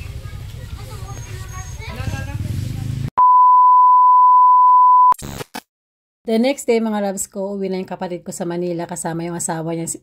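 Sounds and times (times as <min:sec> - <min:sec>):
steady electronic beep: 0:03.2 - 0:05.2.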